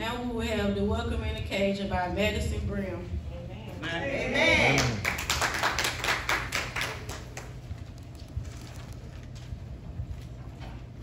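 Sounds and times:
congregation clapping: 0:04.6 - 0:08.1.

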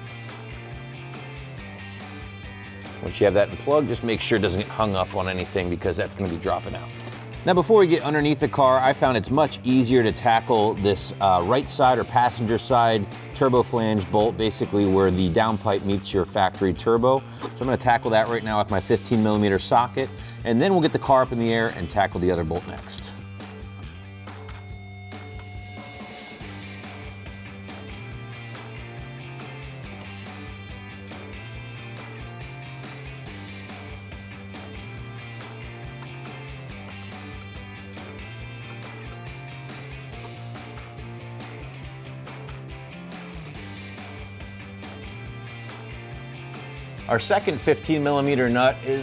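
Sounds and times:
background music with bass line: 0:00.0 - 0:49.0.

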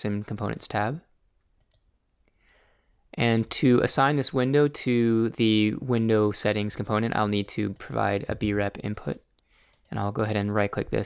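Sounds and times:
soft breath: 0:02.3 - 0:03.1, 0:09.4 - 0:09.9.

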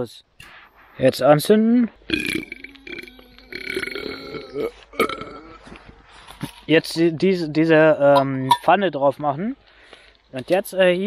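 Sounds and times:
man burping: 0:02.1 - 0:05.8.

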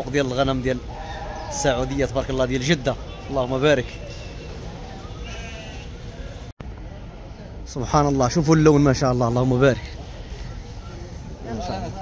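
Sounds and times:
sheep bleating: 0:05.2 - 0:05.9.

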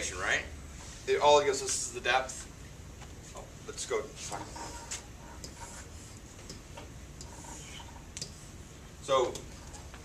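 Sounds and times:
faint irregular clicks: 0:08.1 - 0:08.4.

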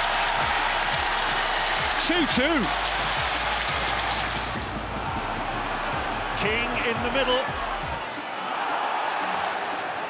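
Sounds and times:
stadium crowd cheering and clapping: 0:00.0 - 0:10.0
commentator speaking: 0:06.4 - 0:07.6.

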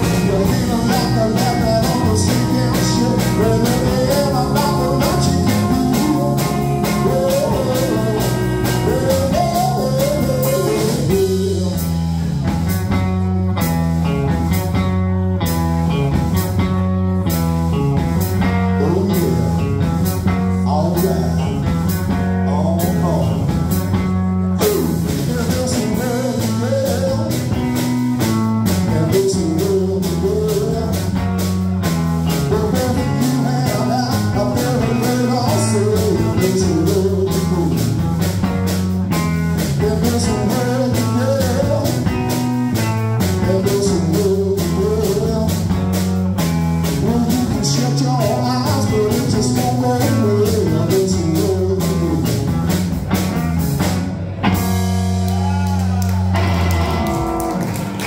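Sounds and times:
steady drumbeat: 0:00.0 - 0:15.0, 0:16.0 - 0:58.0
live rock band playing: 0:00.0 - 0:58.0
repeating bass line: 0:00.0 - 0:58.0.

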